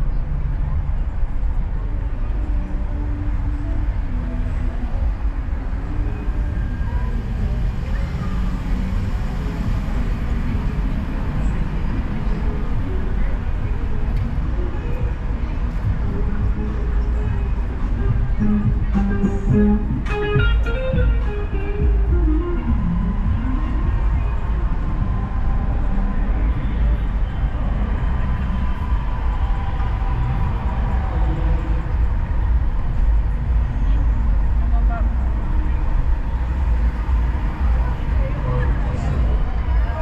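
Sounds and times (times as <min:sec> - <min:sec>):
car driving rumble: 0:00.0 - 0:40.0
music: 0:00.0 - 0:40.0
voices: 0:00.0 - 0:40.0.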